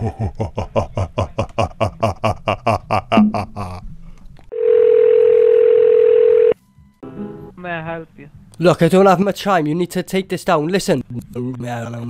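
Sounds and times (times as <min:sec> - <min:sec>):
man laughing: 0:00.0 - 0:03.9
telephone tone: 0:04.5 - 0:06.6.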